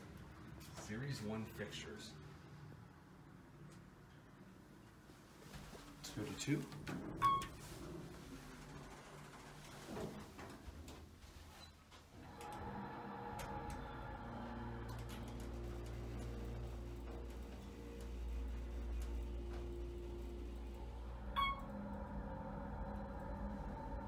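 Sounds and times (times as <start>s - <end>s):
hydraulic pump motor humming: 12.2s - 24.0s.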